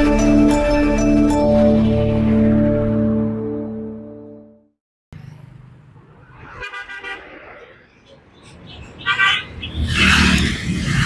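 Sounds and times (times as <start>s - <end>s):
low rumble of traffic: 5.1s - 11.0s
vehicle horns honking: 6.6s - 7.4s, 8.7s - 10.5s.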